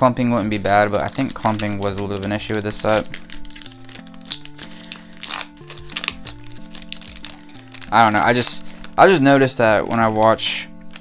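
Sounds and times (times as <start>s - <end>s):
eight-bit background music: 0.0s - 11.0s
foil wrapper crinkling and tearing: 0.0s - 11.0s.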